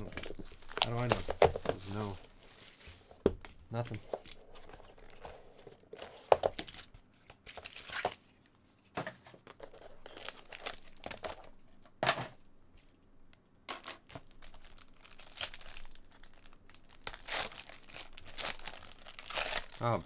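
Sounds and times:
foil wrapper crinkling: 0.0 - 3.1, 10.0 - 11.5, 14.2 - 20.0.

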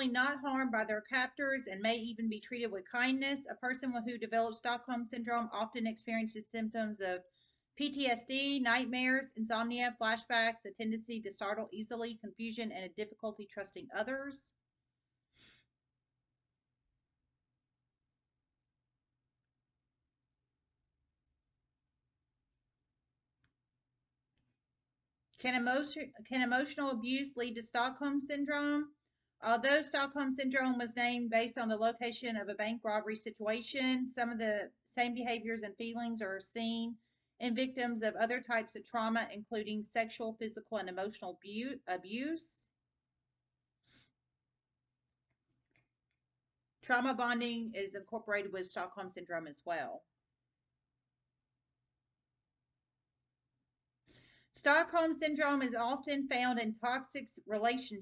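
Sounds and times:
person breathing: 7.3 - 7.7, 15.3 - 15.8, 54.1 - 54.6.

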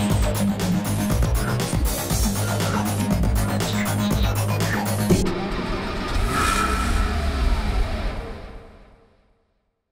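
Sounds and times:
car engine: 5.1 - 9.1.

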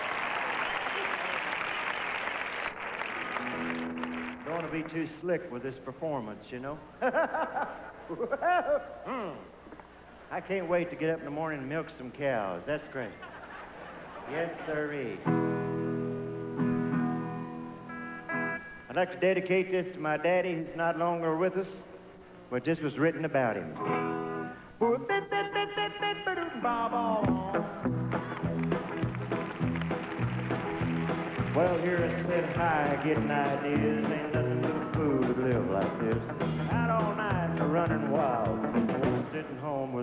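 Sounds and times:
stadium crowd applauding and cheering: 0.0 - 5.1, 27.8 - 34.1
picked guitar notes: 14.7 - 19.0, 23.7 - 39.4
electric guitar chords ringing: 15.1 - 18.9, 23.8 - 39.4.

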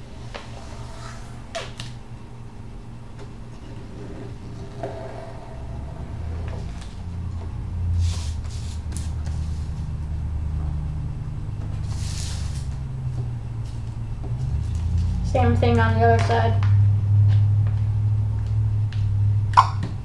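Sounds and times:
low steady rumble: 0.0 - 20.0
paper rustling and sliding on table: 8.0 - 9.8, 11.8 - 12.7.

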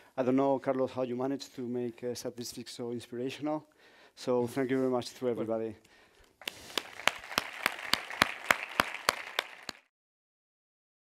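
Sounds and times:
close hands clapping: 6.3 - 9.9
audience applauding: 6.4 - 9.9.

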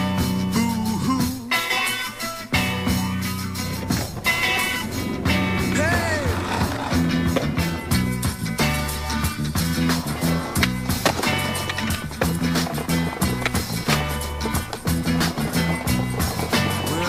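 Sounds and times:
soundtrack music with beat: 0.0 - 17.0.

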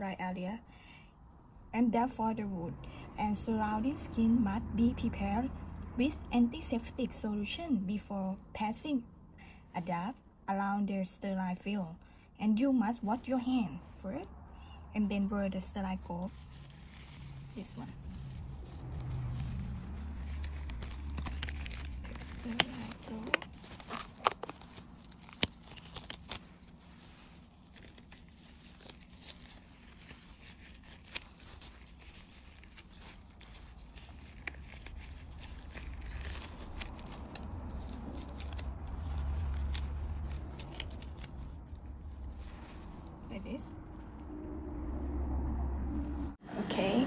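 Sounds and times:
low steady hum: 0.0 - 47.0
gloves snapping and rustling: 16.3 - 43.0.

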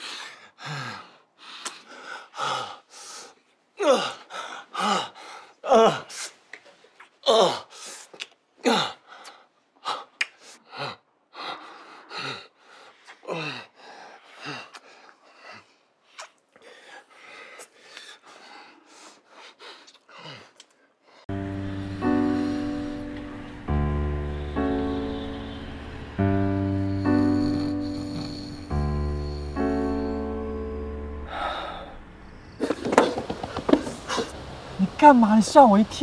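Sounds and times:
man breathing heavily: 0.0 - 6.4, 7.3 - 23.4, 26.4 - 32.6
man moaning: 3.8 - 5.0, 5.6 - 6.1, 7.2 - 7.7.

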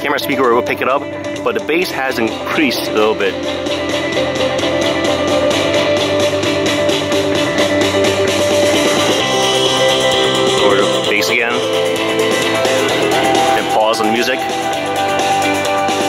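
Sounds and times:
song through wireless speaker: 0.0 - 16.0.

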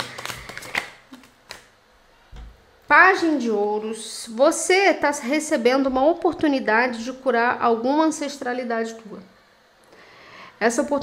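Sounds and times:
cards shuffling: 0.0 - 1.7.

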